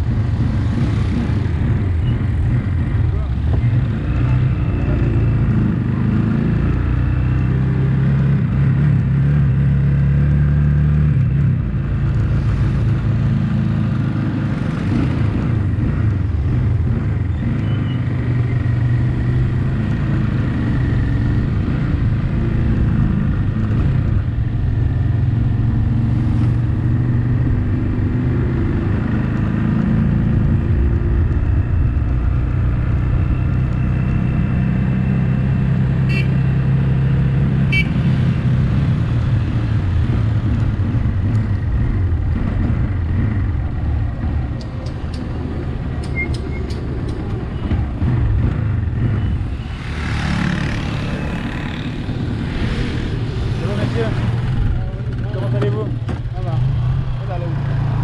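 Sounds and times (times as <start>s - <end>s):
road noise: 0.0s - 58.0s.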